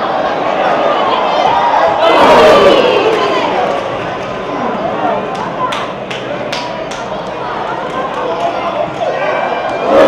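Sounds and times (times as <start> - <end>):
voices shouting: 0.0 - 5.4, 7.5 - 10.0
outdoor stadium background: 0.0 - 10.0.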